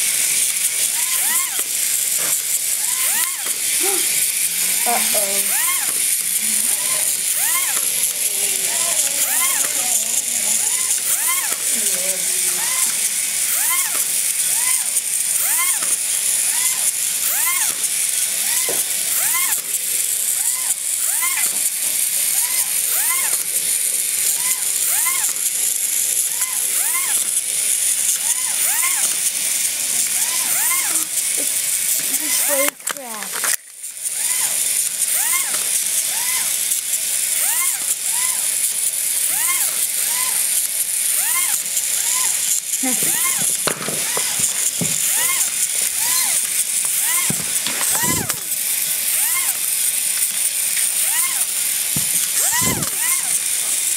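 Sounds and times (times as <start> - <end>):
toy motor whirring: 0.0 - 53.9
rising and falling squeak: 0.8 - 4.0, 4.8 - 17.8, 18.4 - 19.6, 20.4 - 21.6, 22.3 - 23.4, 24.3 - 25.4, 26.3 - 27.4, 28.1 - 29.2, 30.2 - 31.5, 34.2 - 36.6, 37.4 - 38.5, 39.2 - 40.5, 41.2 - 49.7, 50.8 - 53.5.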